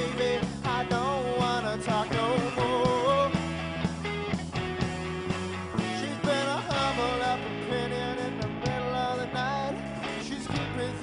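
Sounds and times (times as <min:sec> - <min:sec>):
bass line: 0:00.0 - 0:11.0
guitar: 0:00.0 - 0:11.0.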